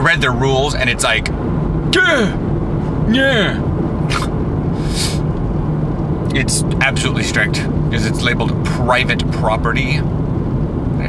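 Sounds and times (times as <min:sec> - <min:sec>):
car cabin road and engine rumble: 0:00.0 - 0:11.0
short hisses: 0:04.1 - 0:05.3.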